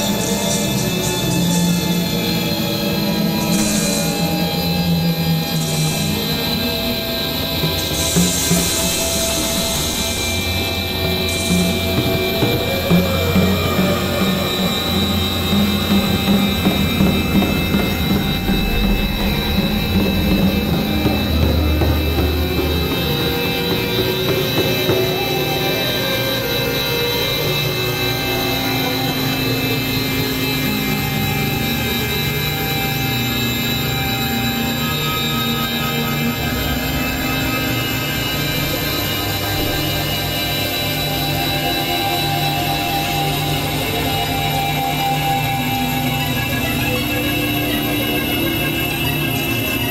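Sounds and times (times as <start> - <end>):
electronic drone music: 0.0 - 49.9.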